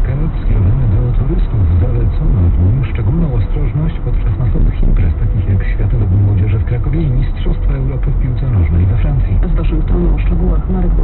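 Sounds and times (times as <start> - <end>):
engine and road rumble: 0.0 - 11.0
voice on car radio: 0.0 - 11.0.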